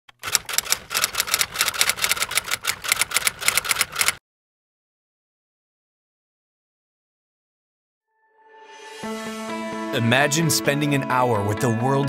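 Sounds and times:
typewriter keystroke clacks: 0:00.1 - 0:04.2.

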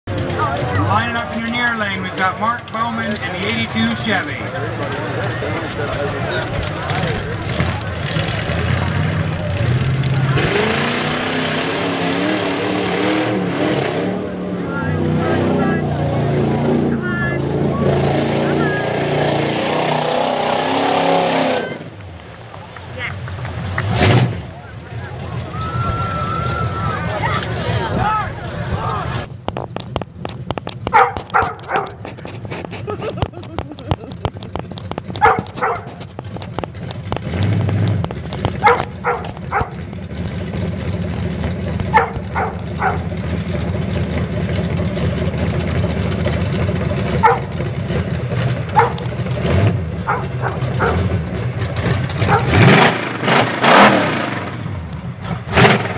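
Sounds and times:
pickup engine revving hard: 0:06.9 - 0:22.0, 0:23.6 - 0:28.0, 0:36.8 - 0:55.9.

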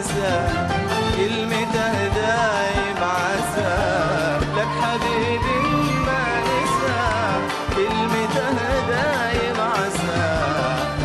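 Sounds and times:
steady percussion beat: 0:00.0 - 0:11.0
wavering melodic song: 0:01.0 - 0:11.0.

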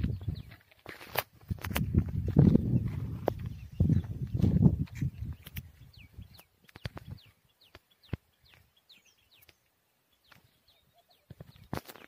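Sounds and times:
birds chirping: 0:00.0 - 0:01.0, 0:01.8 - 0:12.0
low rumbling on microphone: 0:01.6 - 0:06.4.

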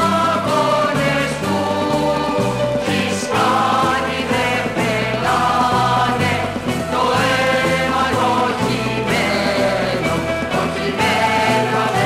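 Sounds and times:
group of voices singing: 0:00.0 - 0:12.0
orchestral accompaniment: 0:00.0 - 0:12.0
stepping bass line: 0:00.0 - 0:12.0.

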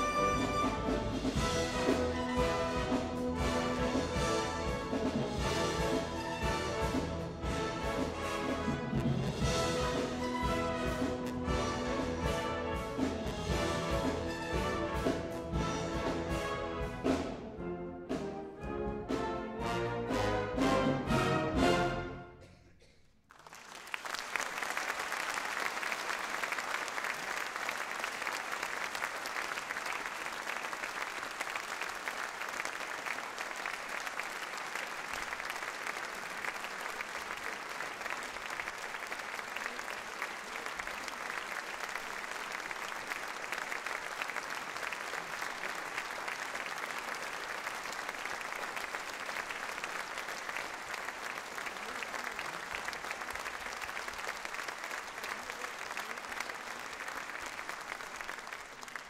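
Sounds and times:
audience applauding: 0:23.2 - 0:59.0.

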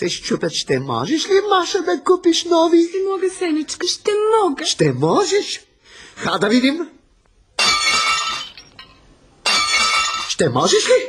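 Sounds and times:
shards ringing and clinking: 0:07.6 - 0:10.7
dishes smashing: 0:07.6 - 0:11.0.

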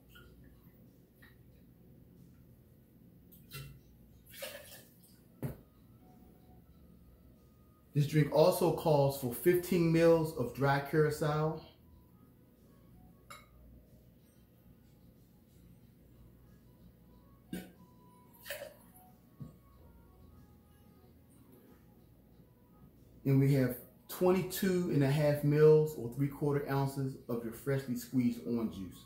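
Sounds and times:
liquid pouring into metal tin: 0:03.4 - 0:05.0.

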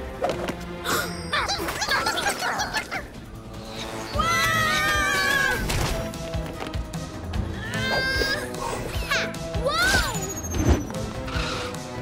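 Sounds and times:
cartoon soundtrack music: 0:00.0 - 0:12.0.

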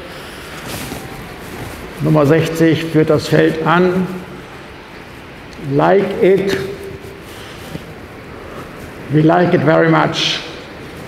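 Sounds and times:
indoor hall background noise: 0:00.0 - 0:11.0.

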